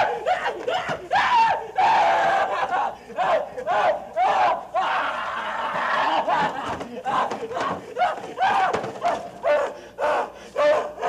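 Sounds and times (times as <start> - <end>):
man sobbing: 0.0 - 11.0.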